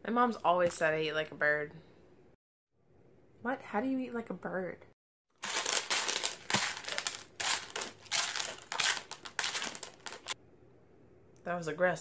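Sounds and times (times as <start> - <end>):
cereal crunching on plastic plate: 5.4 - 10.4.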